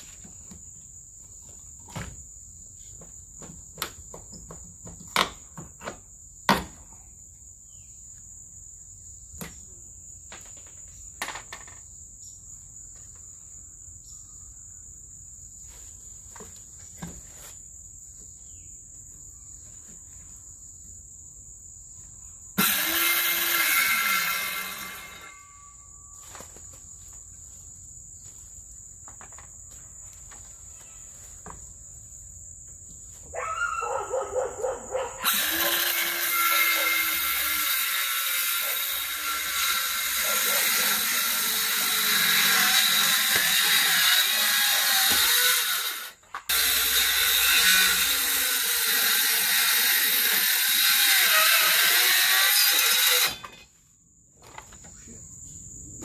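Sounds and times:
crickets trilling: 0:00.0 - 0:56.0
power saw cutting wood: 0:22.6 - 0:25.5, 0:35.2 - 0:53.6.

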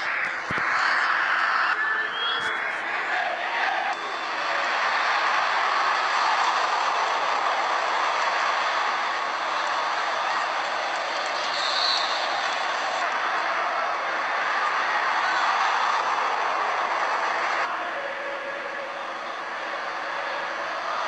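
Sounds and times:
stadium crowd noise: 0:00.0 - 0:21.0.

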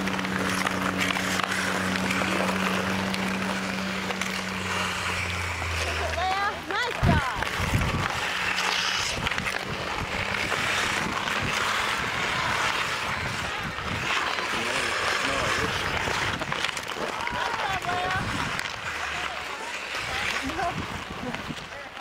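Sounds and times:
hockey sticks clacking: 0:00.0 - 0:22.0
ice skate blades scraping: 0:00.0 - 0:22.0.

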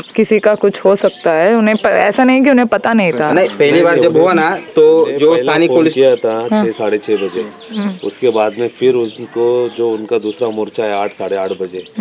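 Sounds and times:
men talking outdoors: 0:00.0 - 0:12.0.

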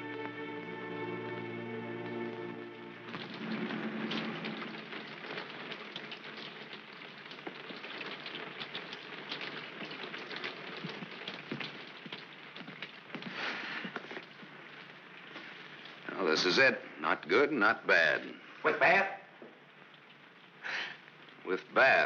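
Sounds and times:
steady rain falling: 0:00.0 - 0:22.0
raindrops spattering: 0:02.0 - 0:22.0.

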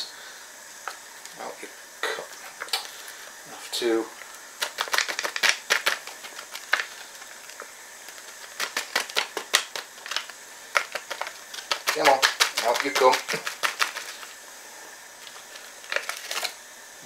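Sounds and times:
faint hiss of boiling liquid: 0:00.0 - 0:17.0
foil packet crinkling: 0:04.2 - 0:14.4, 0:15.1 - 0:16.6.

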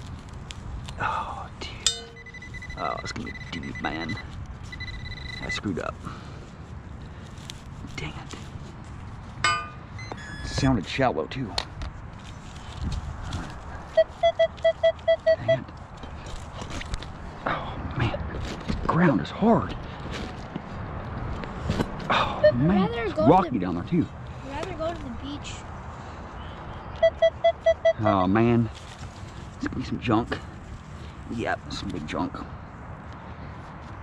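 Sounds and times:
metal detector pinpointer beeping: 0:01.8 - 0:05.6, 0:09.4 - 0:10.6, 0:14.0 - 0:15.6, 0:22.4 - 0:22.7, 0:27.0 - 0:28.2.

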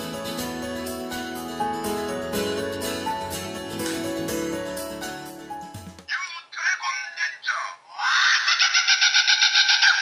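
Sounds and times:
voice-like toy chirps: 0:06.1 - 0:10.0.

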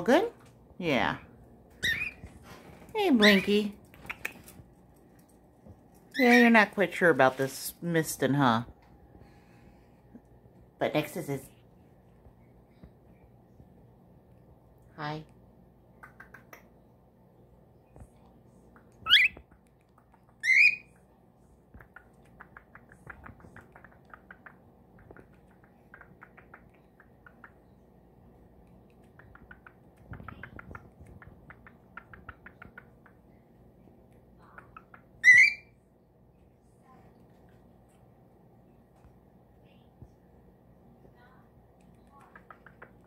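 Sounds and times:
cockatiel chirping: 0:01.8 - 0:02.2, 0:19.0 - 0:19.4, 0:20.4 - 0:20.9, 0:34.8 - 0:35.7
cockatiel calls: 0:35.2 - 0:35.7.

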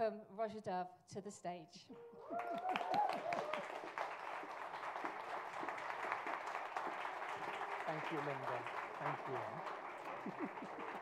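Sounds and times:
audience applauding: 0:02.2 - 0:11.0.

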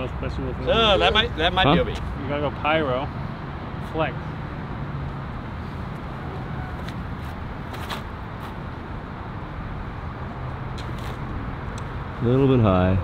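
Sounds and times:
distant road traffic hum: 0:00.0 - 0:13.0.

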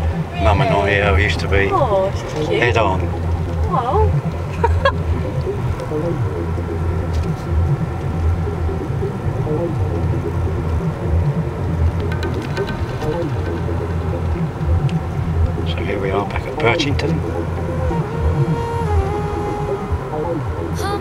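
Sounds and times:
car engine and road noise: 0:00.0 - 0:18.4.

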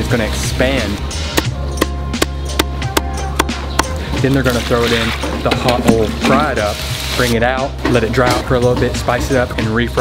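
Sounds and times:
background music: 0:00.0 - 0:10.0
cleaver chopping on wooden block: 0:01.3 - 0:04.0.

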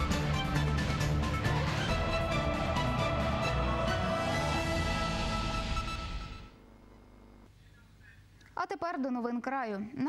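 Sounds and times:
woman speaking: 0:08.5 - 0:10.0.

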